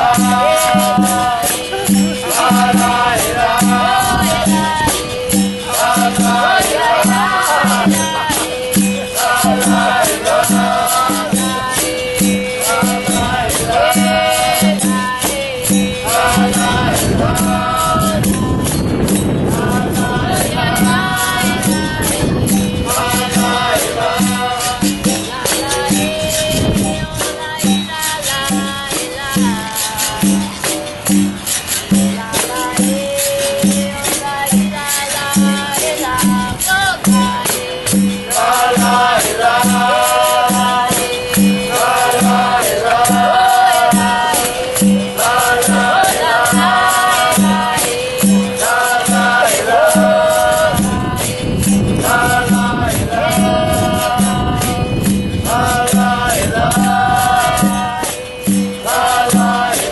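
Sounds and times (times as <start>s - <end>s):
person singing: 0.0s - 31.0s, 32.0s - 59.9s
group chorus singing: 0.0s - 59.9s
percussion and berimbau music: 0.0s - 59.9s.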